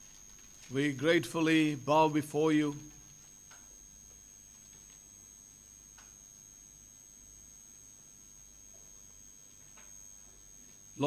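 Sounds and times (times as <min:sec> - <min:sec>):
faint high-pitched whine: 0:00.0 - 0:11.0
faint low hum: 0:00.0 - 0:11.0.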